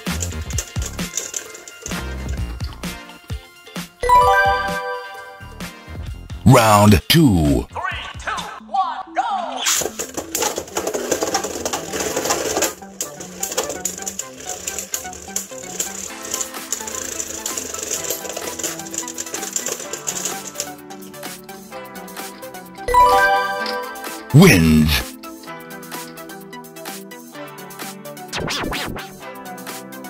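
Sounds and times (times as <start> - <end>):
spinning tops whirring: 0.0 - 2.6, 10.1 - 20.8
spinning tops clattering: 0.0 - 2.7, 9.8 - 20.8
background music: 0.0 - 30.0.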